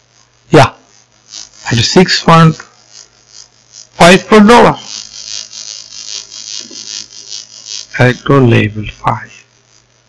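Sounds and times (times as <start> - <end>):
low electrical hum: 0.0 - 10.0
recording hiss: 0.0 - 10.0.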